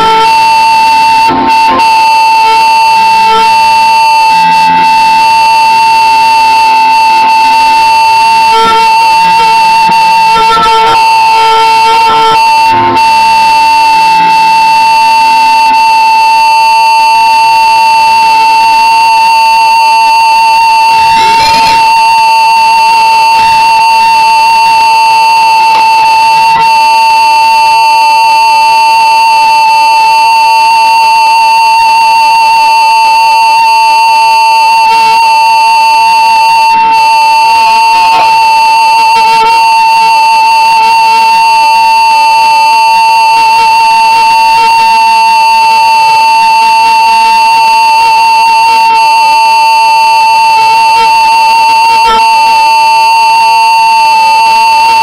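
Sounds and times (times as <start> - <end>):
flute and band melody: 0.0 - 16.1, 20.8 - 27.2, 36.3 - 41.3
loud steady high tone: 0.0 - 55.0.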